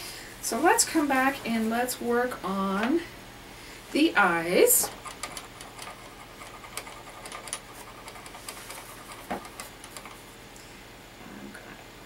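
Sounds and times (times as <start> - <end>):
steady low hiss: 0.0 - 12.0
metal stylus tapping wax cups: 4.8 - 10.2.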